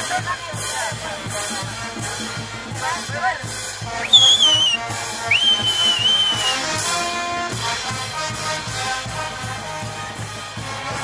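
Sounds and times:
brass band dance music: 1.3s - 11.0s
loud high whistles: 4.0s - 6.7s.

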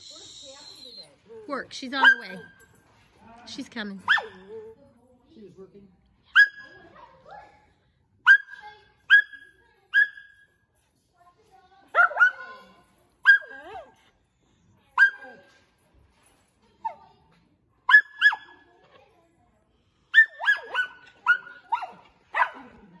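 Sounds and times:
dog barking high-pitched: 2.0s - 2.6s, 4.0s - 4.5s, 6.4s - 6.8s, 8.3s - 10.4s, 12.0s - 13.8s, 15.0s - 15.5s, 17.9s - 18.6s, 20.1s - 22.8s.

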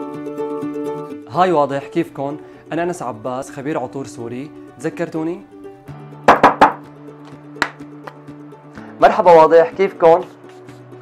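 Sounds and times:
background music: 0.0s - 11.0s
perfume bottle taps: 6.3s - 8.2s.

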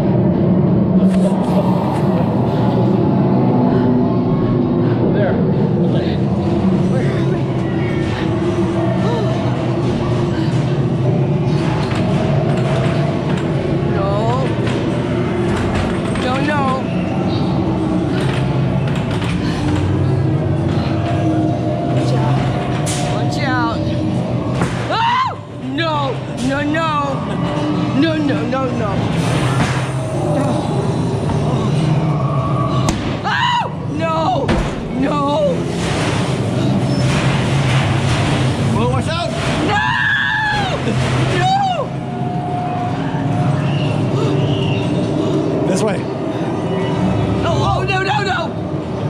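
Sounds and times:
haunted attraction rumble: 0.0s - 49.0s
loud steady rushing noise: 0.0s - 49.0s
low hum: 0.0s - 49.0s.

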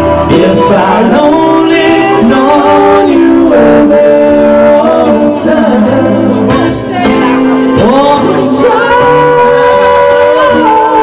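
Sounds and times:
acoustic guitar: 0.0s - 11.0s
men singing together: 0.3s - 7.1s, 7.8s - 11.0s.

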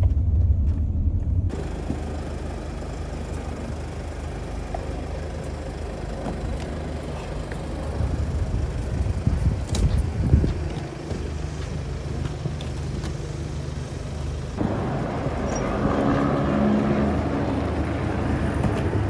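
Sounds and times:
low rumble of city traffic: 0.0s - 19.0s.

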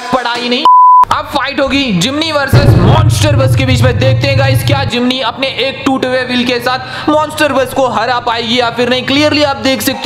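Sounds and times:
man narrating: 0.0s - 10.0s
short electronic beep: 0.7s - 1.1s.

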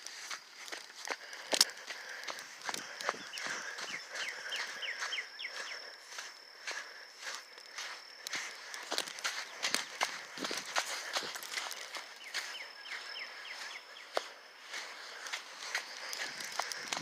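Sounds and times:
footsteps on sand: 0.0s - 17.0s
thin steady high tone: 2.4s - 17.0s.

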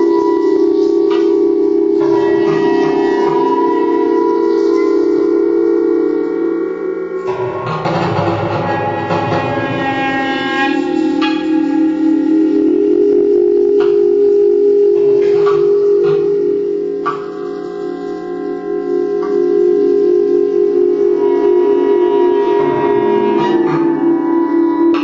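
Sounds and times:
steady low tone: 0.0s - 25.0s
clarinet playing long notes: 8.6s - 17.0s, 18.9s - 25.0s.

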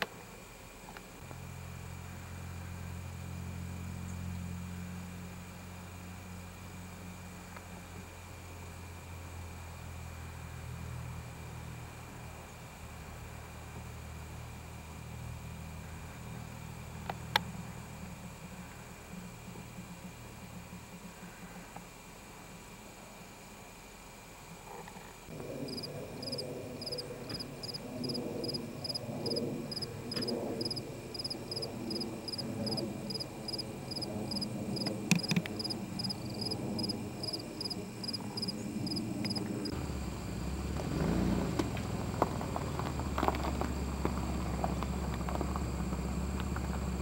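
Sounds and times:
low outdoor rumble: 0.0s - 47.0s
cricket chirping: 25.0s - 47.0s.

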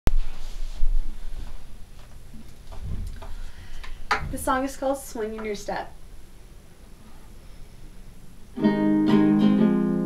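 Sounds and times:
low bumps: 2.8s - 3.4s, 4.1s - 4.7s.

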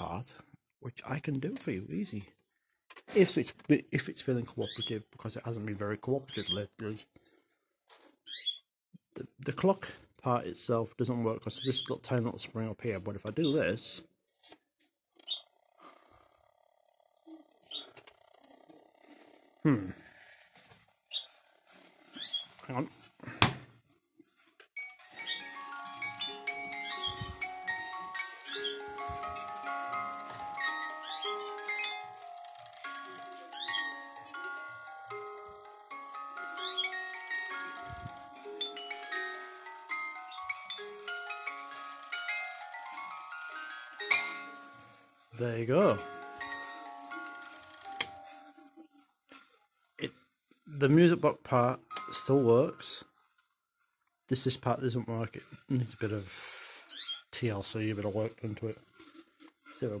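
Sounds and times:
music box playing tune: 24.4s - 49.5s, 51.6s - 53.2s.

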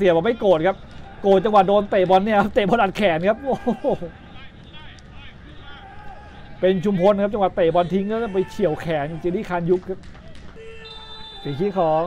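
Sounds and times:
man commentating: 0.0s - 10.0s, 11.4s - 12.0s
football match crowd ambience: 0.0s - 12.0s.

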